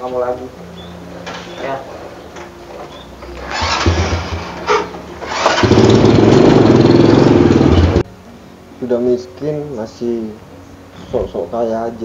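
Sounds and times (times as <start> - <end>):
motorcycle engine starting and running: 3.2 - 8.0.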